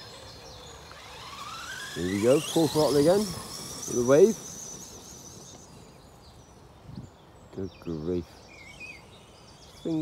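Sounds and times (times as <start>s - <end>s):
electric motor whining: 0.0s - 6.7s.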